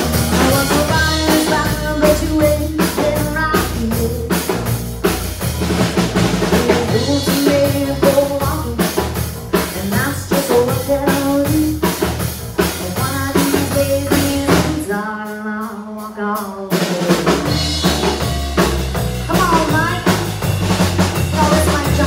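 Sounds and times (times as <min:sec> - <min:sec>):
drum kit beat: 0:00.0 - 0:22.0
live band playing country-rock: 0:00.0 - 0:22.0
woman singing: 0:00.3 - 0:04.6, 0:06.5 - 0:12.0, 0:12.8 - 0:18.1, 0:19.3 - 0:20.2, 0:21.3 - 0:22.0.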